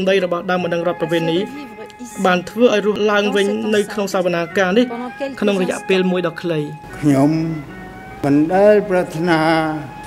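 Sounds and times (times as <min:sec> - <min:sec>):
elderly man speaking: 0:00.0 - 0:01.6, 0:02.2 - 0:07.6.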